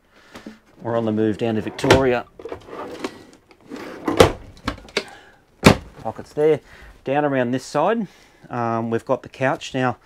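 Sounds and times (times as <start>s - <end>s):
drawers knocking shut: 1.7s - 3.0s, 3.8s - 5.0s, 5.6s - 6.0s.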